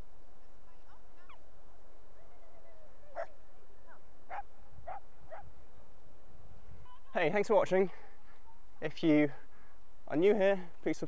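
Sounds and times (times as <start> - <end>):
dog barking: 4.3 - 5.5.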